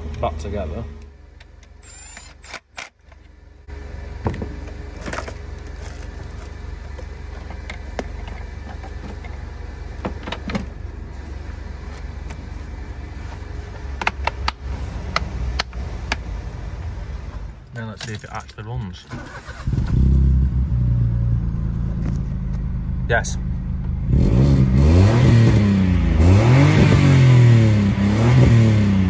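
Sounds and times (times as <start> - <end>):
steady low hum: 0.0 - 24.9.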